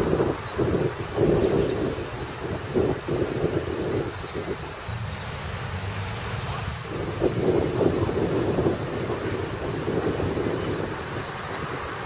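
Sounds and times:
fountain water spraying: 0:00.0 - 0:12.0
wind buffeting microphone: 0:00.0 - 0:12.0.

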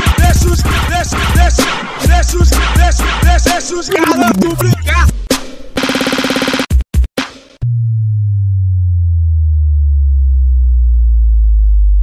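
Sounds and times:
deep synthesized bass note: 0:07.6 - 0:12.0.

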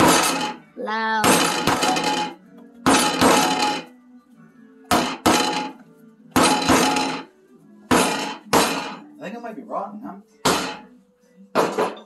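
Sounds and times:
hammer striking coconut: 0:02.8 - 0:03.9, 0:04.9 - 0:07.3, 0:07.9 - 0:09.0, 0:10.4 - 0:10.9.

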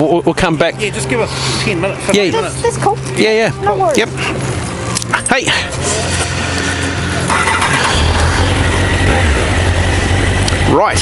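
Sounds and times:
motorcycle engine: 0:02.2 - 0:11.0.

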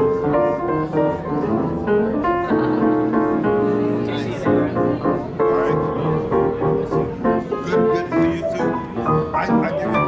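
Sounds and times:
grand piano chords and notes: 0:00.0 - 0:10.0.

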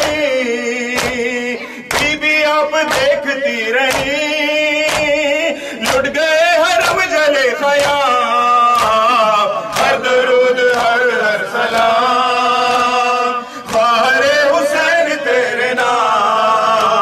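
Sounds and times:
men chanting in unison: 0:00.0 - 0:17.0
hands slapping chests: 0:00.9 - 0:14.8.

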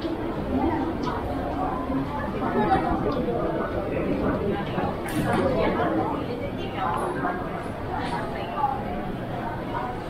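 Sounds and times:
indistinct chatter of shoppers: 0:00.0 - 0:10.0.

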